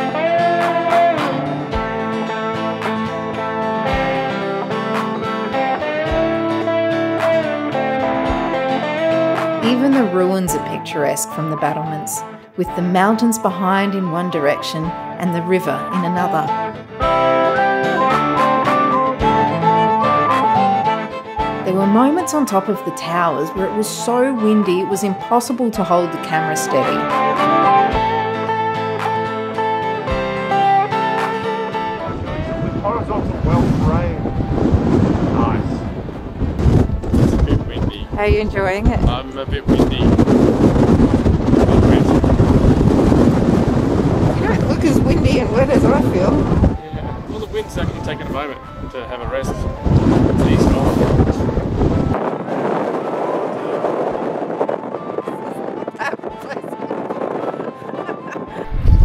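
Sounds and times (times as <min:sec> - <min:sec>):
acoustic guitar music: 0:00.0 - 0:39.2, 0:40.0 - 0:59.0
wind buffeting microphone: 0:31.9 - 0:59.0.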